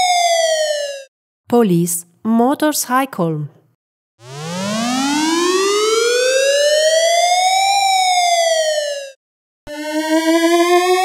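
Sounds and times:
electronic siren wail: 0.0 - 1.1, 4.2 - 11.0.

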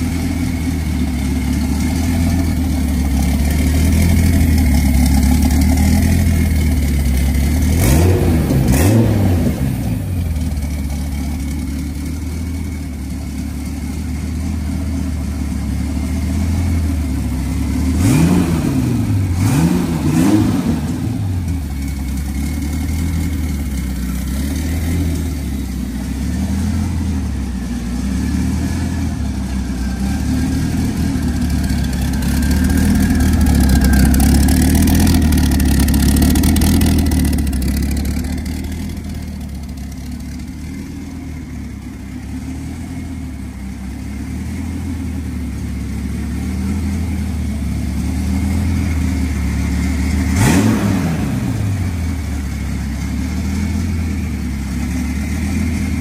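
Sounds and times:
car engine idling: 0.0 - 56.0
engine revving: 1.9 - 10.6, 17.7 - 27.2, 27.9 - 39.1, 47.9 - 56.0.

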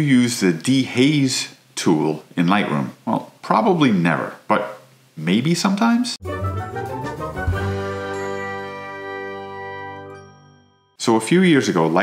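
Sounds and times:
bright chiming chord: 6.3 - 11.0.

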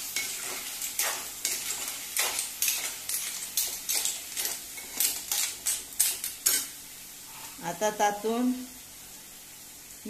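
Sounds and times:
faint sizzle: 0.0 - 10.0.

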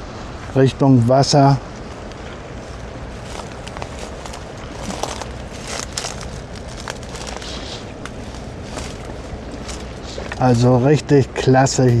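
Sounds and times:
footsteps crunching through dry reeds: 1.7 - 10.5.

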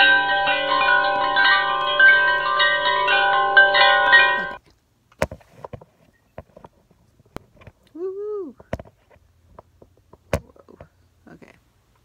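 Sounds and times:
wind chime music: 0.0 - 4.6.

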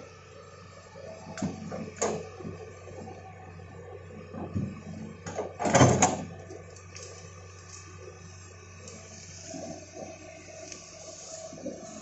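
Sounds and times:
excavator running: 0.0 - 12.0.

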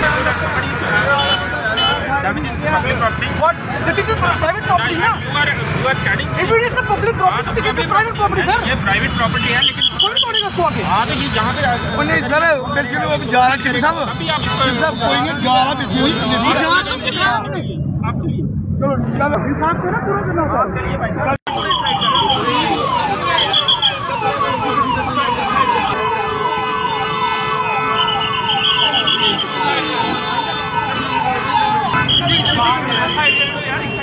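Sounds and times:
crowd voices: 0.0 - 34.0
siren in falling sweeps: 21.5 - 29.0.

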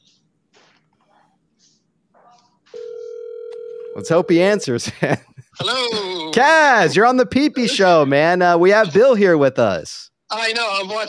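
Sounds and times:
telephone ringback tone: 2.8 - 4.7.

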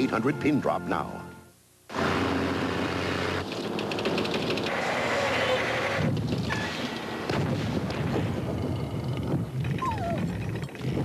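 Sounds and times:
rapid clatter: 3.4 - 4.9.

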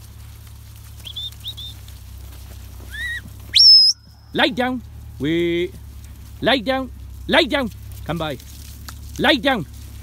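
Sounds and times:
short high whistle chirps: 1.0 - 1.8, 2.9 - 4.1
loud rising whistle: 2.9 - 4.1.

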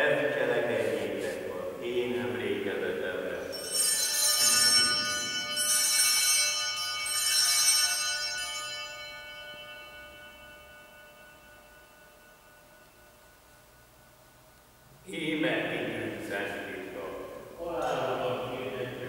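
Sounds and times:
altar bells jangling: 3.4 - 13.4.

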